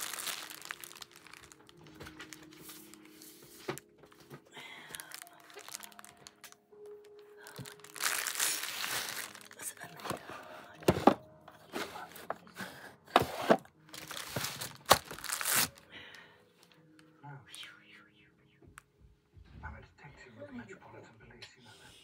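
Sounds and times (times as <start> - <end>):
packaging crinkling and tearing: 0.0 - 11.2, 13.1 - 16.0
faint television: 1.5 - 7.9, 9.4 - 13.8, 15.8 - 22.0.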